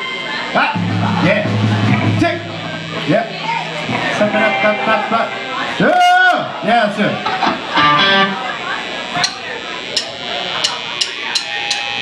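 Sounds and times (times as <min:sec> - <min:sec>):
guitar amplifier hum: 0:00.5 - 0:11.0.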